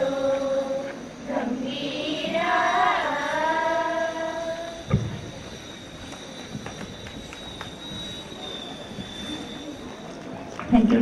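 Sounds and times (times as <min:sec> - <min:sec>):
thump: 0:04.9 - 0:05.2.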